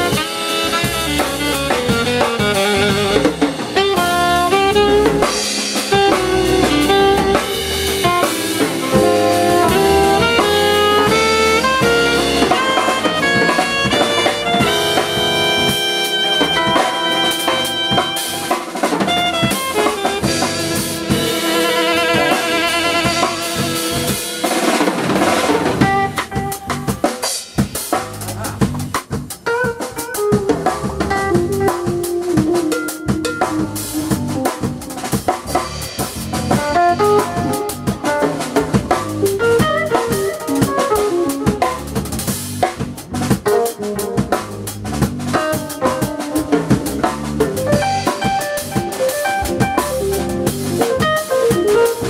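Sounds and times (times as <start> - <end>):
alto saxophone long note: 0.0 - 24.6
electric keyboard runs: 0.0 - 26.8, 46.6 - 52.0
drum kit: 0.0 - 52.0
electric bass: 0.0 - 52.0.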